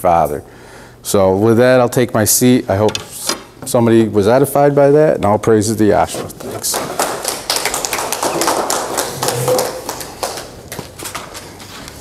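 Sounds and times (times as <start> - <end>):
audience applauding: 6.7 - 10.7.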